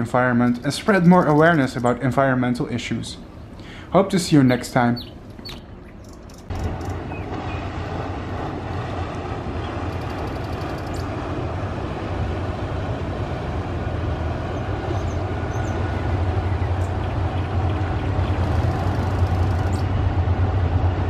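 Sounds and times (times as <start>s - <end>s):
river water wash: 0.0s - 21.0s
ship diesel engine rumble: 0.0s - 21.0s.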